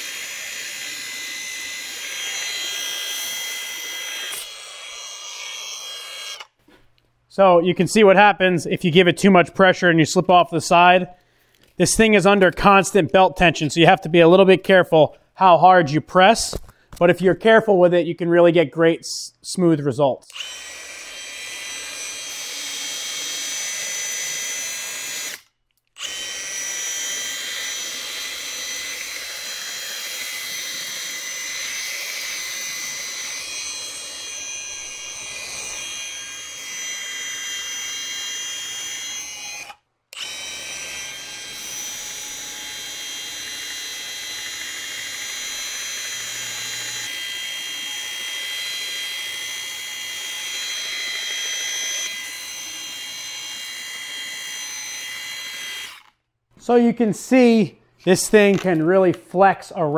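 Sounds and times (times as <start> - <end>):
sanding belt high whine: 0.0 - 6.5.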